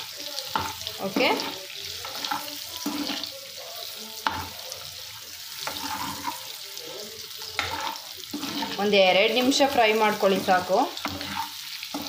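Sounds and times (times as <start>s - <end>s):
eggs sizzling in hot oil: 0.0s - 12.0s.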